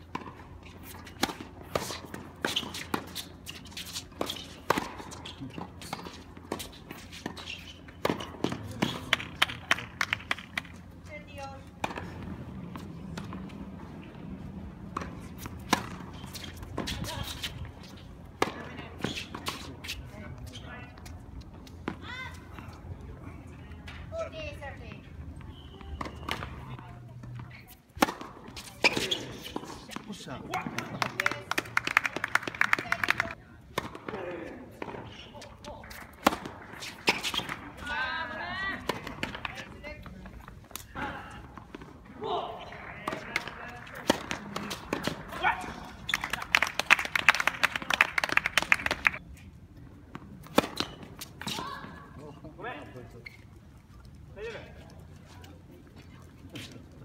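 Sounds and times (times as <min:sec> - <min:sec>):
tennis balls struck by rackets: 0:00.0 - 0:20.2, 0:25.9 - 0:49.2, 0:50.0 - 0:52.0.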